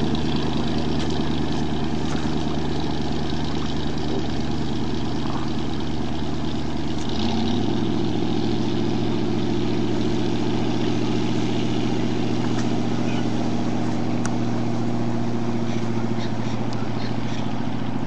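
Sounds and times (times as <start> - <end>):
speedboat engine running: 0.0 - 18.0.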